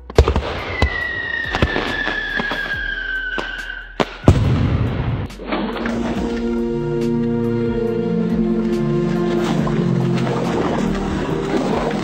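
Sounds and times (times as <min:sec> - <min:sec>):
fireworks crackling: 0:00.0 - 0:04.6
fireworks bangs: 0:00.0 - 0:05.3
falling firework whistle: 0:00.5 - 0:04.3
instrumental music: 0:05.3 - 0:12.0.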